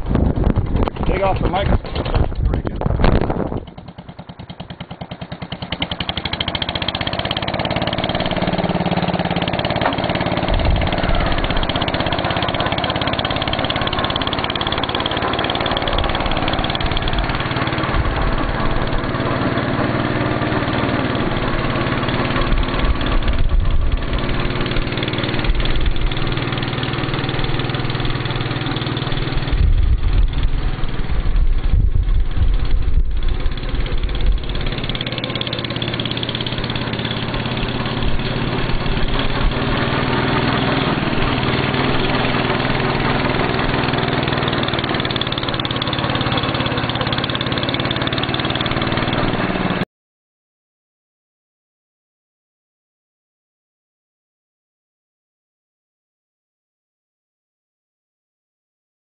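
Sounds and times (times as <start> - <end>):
walk-behind tractor engine running: 0.0 - 49.8.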